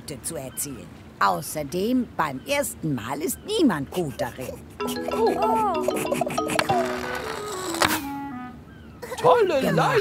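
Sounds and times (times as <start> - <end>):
cartoon music with descending notes: 4.8 - 8.0.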